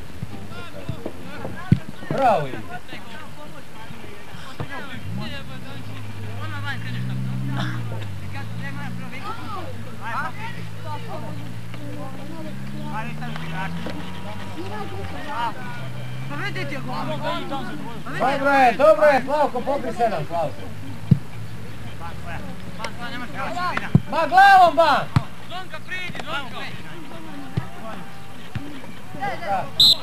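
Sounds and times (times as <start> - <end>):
distant shouts: 4.0 - 30.0
vehicle engine droning: 4.8 - 30.0.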